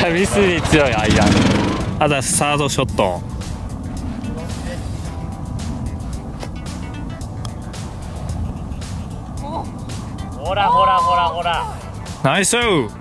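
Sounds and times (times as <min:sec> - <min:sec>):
wind rumble on microphone: 0:00.0 - 0:12.2
faint background music: 0:00.0 - 0:13.0.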